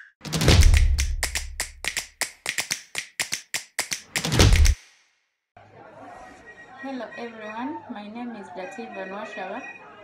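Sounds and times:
rapid sharp taps: 0.3s - 4.8s.

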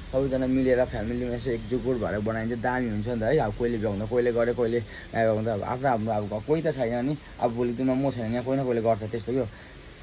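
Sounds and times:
man speaking: 0.0s - 9.7s.

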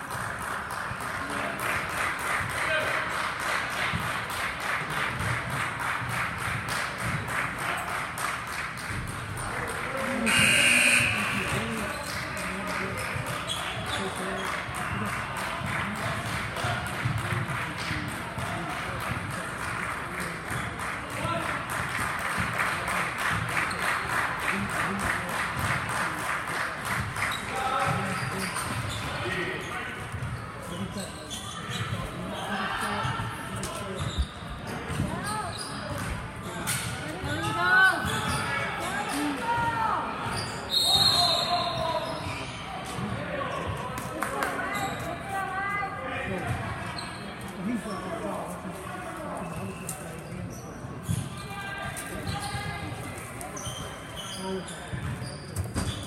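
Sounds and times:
echoing voices and calls: 10.2s - 12.5s.

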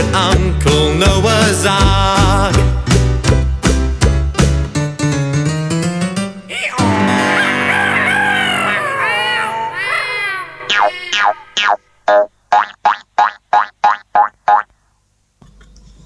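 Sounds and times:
cartoon boing sound effect: 10.7s - 14.6s.

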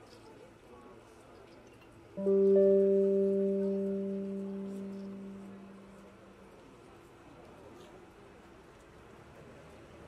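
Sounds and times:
low amplified note ringing: 2.2s - 6.7s.

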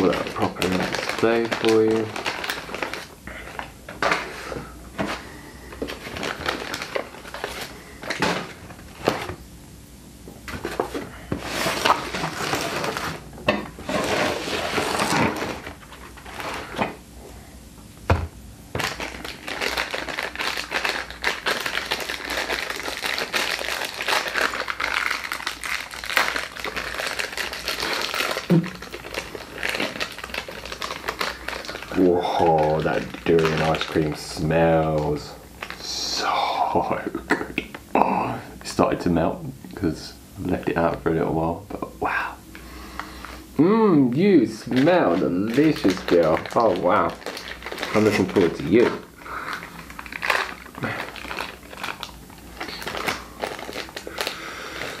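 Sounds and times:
paper wrappers crinkling: 0.0s - 9.4s, 10.5s - 17.0s, 18.7s - 37.1s, 42.9s - 55.0s.

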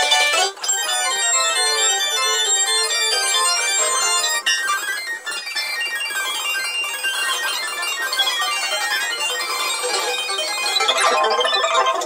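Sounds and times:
fast digital piano runs: 0.0s - 12.0s.

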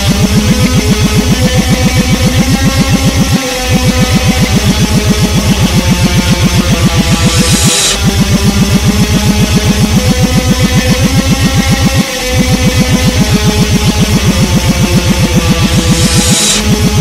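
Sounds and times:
rapid low pulses: 0.0s - 17.0s
reversed black metal instrumental: 0.0s - 17.0s.

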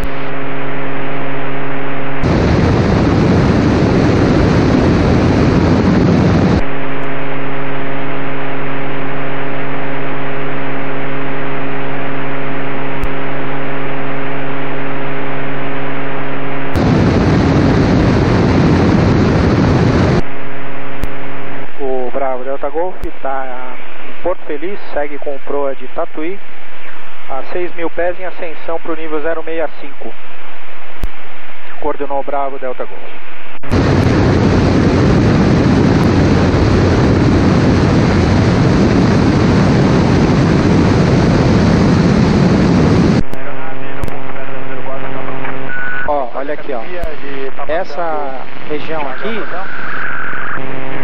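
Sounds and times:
propeller plane engine drone: 0.0s - 22.0s, 33.6s - 45.4s
radio static hiss: 0.0s - 51.0s.

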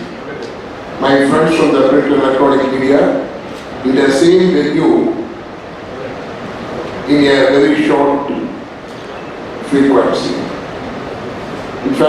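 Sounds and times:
hall background hiss: 0.0s - 12.0s.

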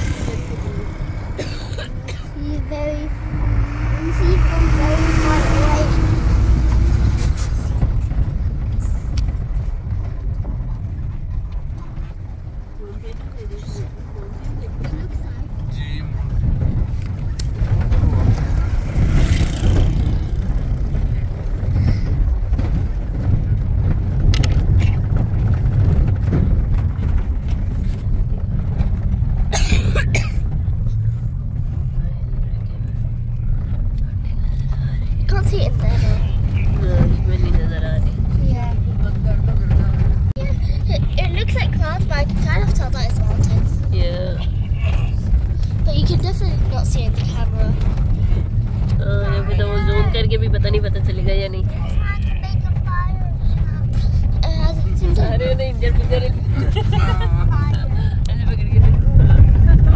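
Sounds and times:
vehicle rumble on dirt road: 0.0s - 59.9s.

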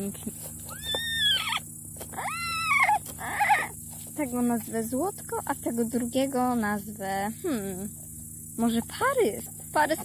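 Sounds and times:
high squealing foal calls: 0.7s - 1.6s, 2.2s - 3.8s.

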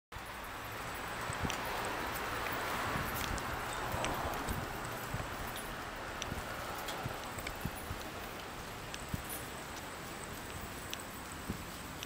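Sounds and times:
rushing street noise: 0.1s - 12.0s.

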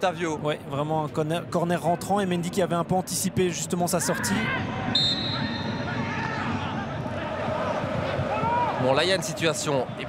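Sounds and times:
open stadium ambience: 0.0s - 10.0s.

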